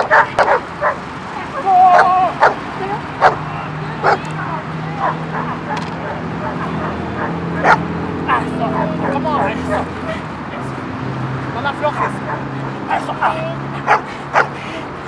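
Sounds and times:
dog barking: 0.0s - 1.0s, 1.9s - 2.6s, 3.2s - 3.4s, 4.0s - 4.3s, 5.0s - 9.9s, 12.0s - 14.5s.

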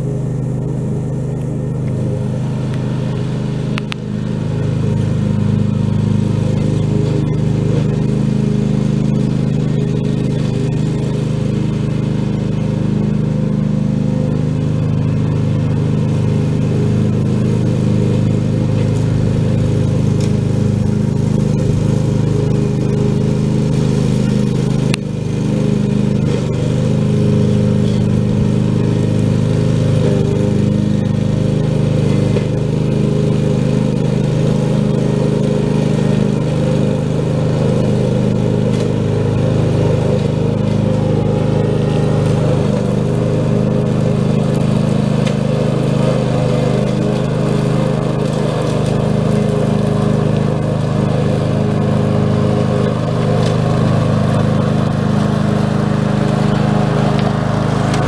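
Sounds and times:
ride-on lawn mower running: 0.0s - 58.0s
click: 3.8s - 4.0s.

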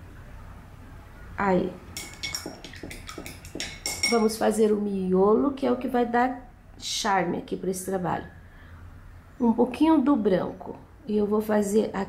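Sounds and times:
paintbrush knocking against container: 2.0s - 4.4s.

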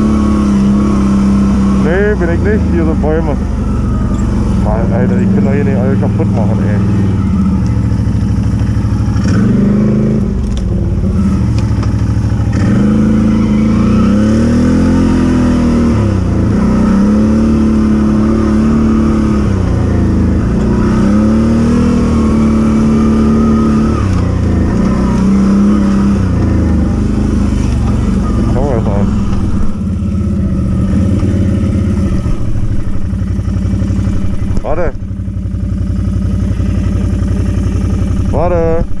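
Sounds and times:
quad bike engine revving: 0.0s - 39.0s.

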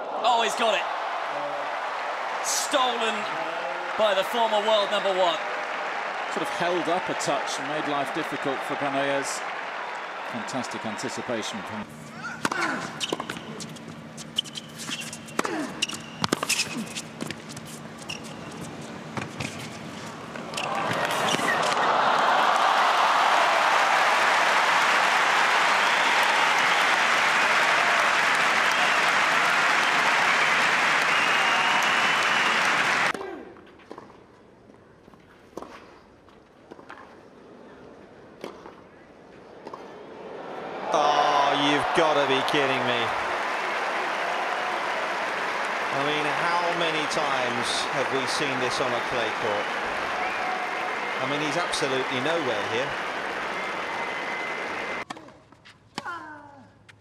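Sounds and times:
crowd applauding and cheering: 0.0s - 11.9s, 20.4s - 33.2s, 40.4s - 55.1s.

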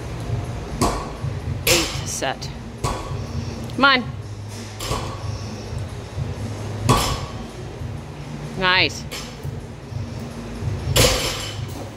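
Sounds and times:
barbell dropping on rubber floor: 6.9s - 7.4s, 11.0s - 11.7s.

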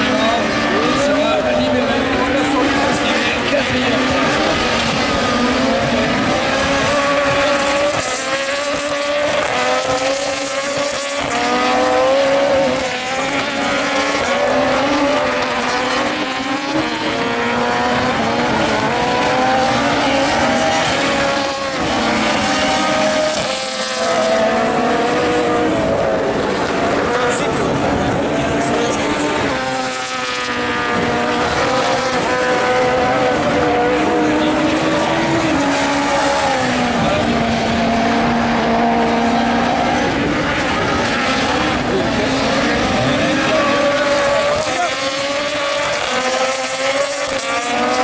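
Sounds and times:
racing car engines revving high: 0.0s - 48.0s.

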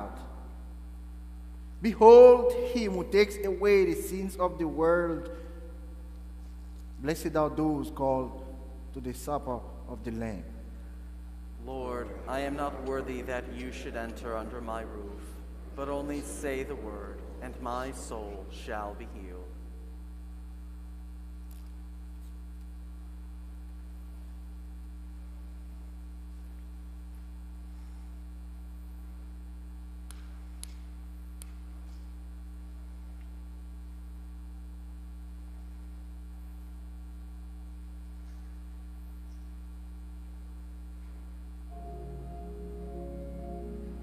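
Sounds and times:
low electrical hum: 0.0s - 44.0s.

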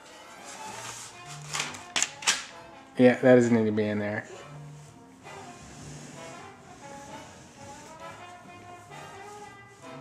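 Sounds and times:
quiet background music: 0.0s - 10.0s
sharp clicks of papers: 1.4s - 2.5s.

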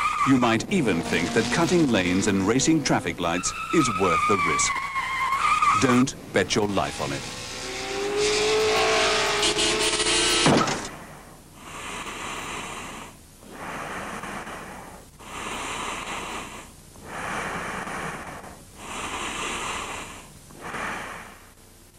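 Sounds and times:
car tyres screeching: 0.0s - 11.0s
breathing-like swells of noise: 11.0s - 21.6s.

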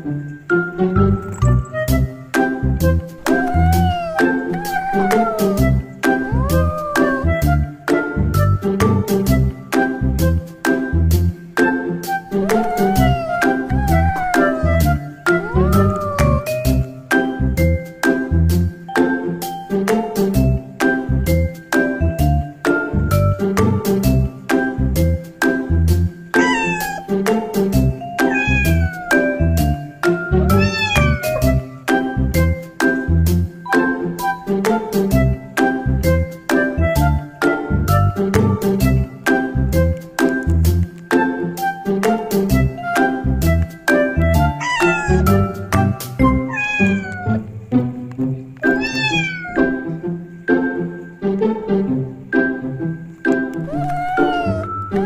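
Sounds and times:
background music with steady beat: 0.0s - 4.5s, 7.2s - 13.2s, 16.5s - 26.3s, 29.2s - 46.5s, 49.7s - 53.7s
music with mallet percussion tune: 0.3s - 2.6s
cat meowing: 3.2s - 7.6s, 12.2s - 16.8s, 26.4s - 27.2s, 28.2s - 29.6s, 30.5s - 31.7s, 42.7s - 43.1s, 44.1s - 47.5s, 48.6s - 49.8s, 53.6s - 55.0s
kittens mewing: 3.2s - 7.6s, 12.2s - 16.8s, 26.4s - 27.2s, 28.2s - 29.6s, 30.4s - 31.8s, 42.7s - 43.2s, 44.1s - 47.5s, 48.6s - 49.8s, 53.6s - 55.0s.

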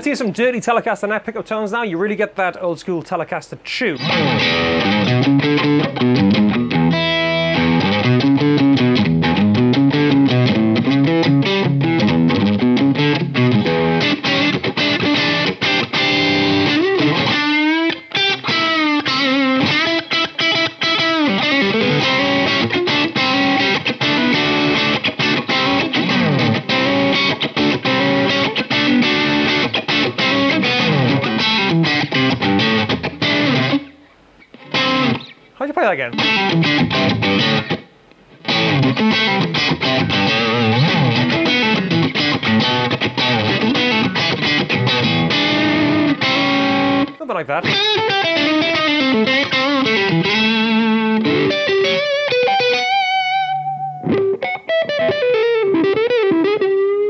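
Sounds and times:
overdriven electric guitar lead: 4.0s - 35.4s, 36.0s - 57.0s.

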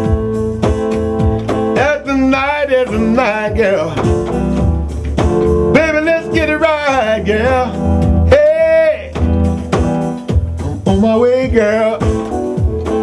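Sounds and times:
electronic keyboard: 0.0s - 13.0s
low bass: 0.0s - 13.0s
man singing: 1.7s - 4.6s, 5.6s - 9.3s, 10.6s - 12.4s.

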